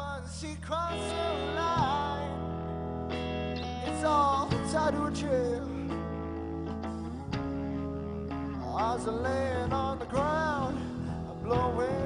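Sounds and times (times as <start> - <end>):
sustained bass notes: 0.0 - 12.0
live rock band playing: 0.9 - 12.0.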